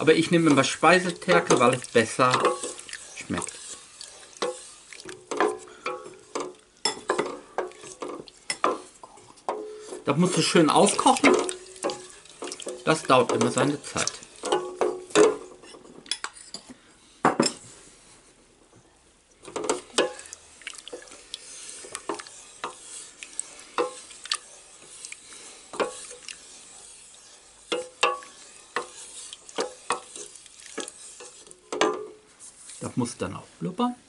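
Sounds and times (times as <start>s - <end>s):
wooden spoon scraping a metal pot: 0.0s - 16.7s, 19.4s - 33.2s.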